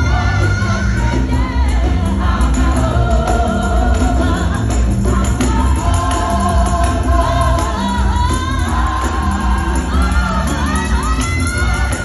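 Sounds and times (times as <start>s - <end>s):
band with steady bass: 0.0s - 12.0s
gospel choir singing: 0.0s - 12.0s.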